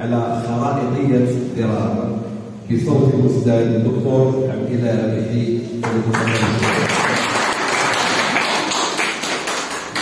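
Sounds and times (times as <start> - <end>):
audience applauding: 6.1 - 10.0.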